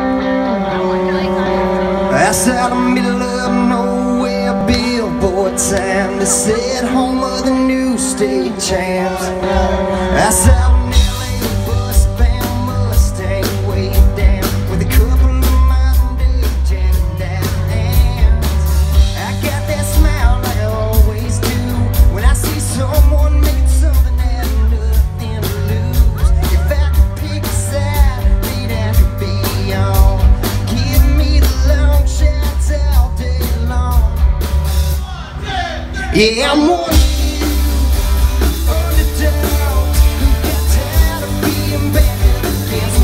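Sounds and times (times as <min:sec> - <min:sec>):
electric guitars: 0:00.0 - 0:35.0, 0:35.8 - 0:43.0
bass guitar: 0:00.0 - 0:43.0
country-rock band playing: 0:00.0 - 0:43.0
male lead vocal: 0:00.0 - 0:43.0
drum kit beat: 0:09.4 - 0:43.0.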